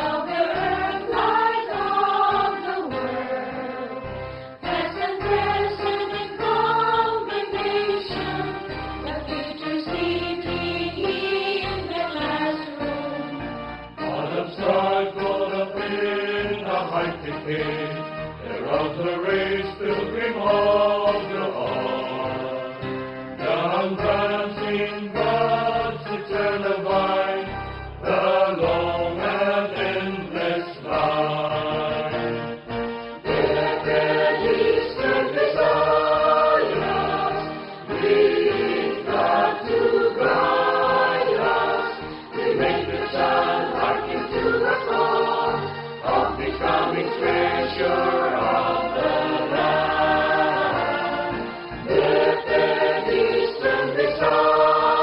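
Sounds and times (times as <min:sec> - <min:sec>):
instrumental accompaniment: 0:00.0 - 0:55.0
voices singing a hymn: 0:00.0 - 0:55.0.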